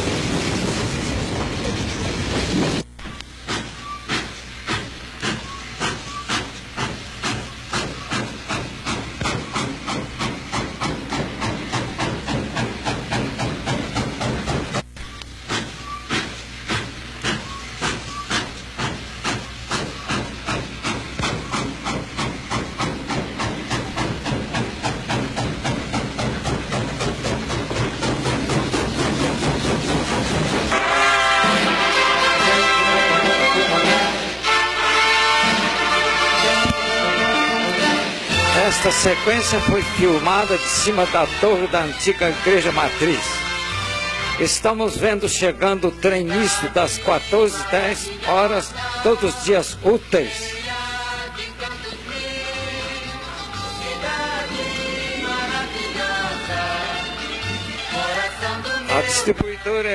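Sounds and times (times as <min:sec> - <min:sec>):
steam hissing: 0:00.0 - 0:14.8, 0:15.4 - 0:59.3
steam locomotive chuffing: 0:00.0 - 0:59.9.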